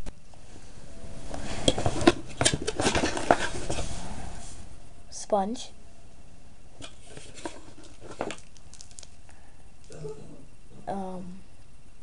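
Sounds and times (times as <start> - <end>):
plastic items clicking and rustling: 1.6 - 3.8, 6.8 - 9.2.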